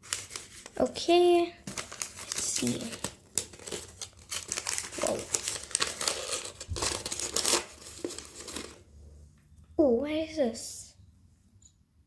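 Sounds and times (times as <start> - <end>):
plastic wrapper crinkling and tearing: 0.0 - 8.8.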